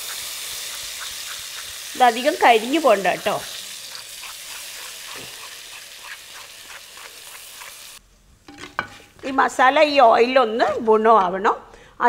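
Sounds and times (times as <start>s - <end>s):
spices sizzling in hot oil: 0.0s - 9.1s
wooden spoon scraping: 6.6s - 9.6s.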